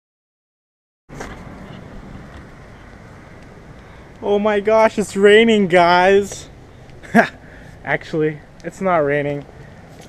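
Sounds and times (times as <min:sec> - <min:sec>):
steady rushing noise: 0:01.1 - 0:10.0.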